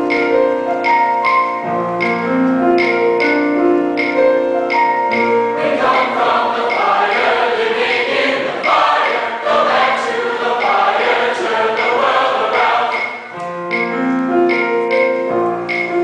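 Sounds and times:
piano: 0:00.0 - 0:16.0
mixed choir singing: 0:05.6 - 0:13.3.

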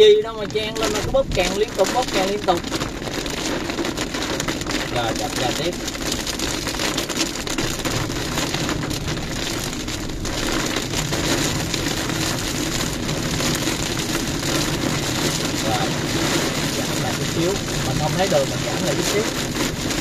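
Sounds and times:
heavy rain on a car: 0:00.0 - 0:20.0
tyre and engine noise: 0:07.6 - 0:20.0.

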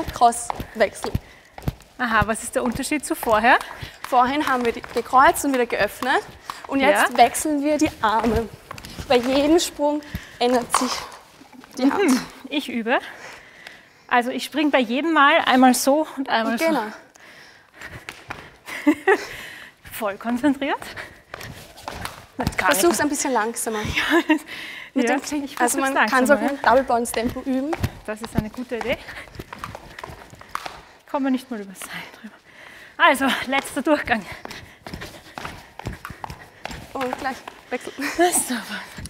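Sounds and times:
shoes landing: 0:00.0 - 0:11.2, 0:25.2 - 0:30.9
skipping rope slapping floor: 0:00.0 - 0:11.3, 0:17.8 - 0:19.3, 0:20.3 - 0:23.3, 0:25.1 - 0:32.2, 0:33.1 - 0:39.0.

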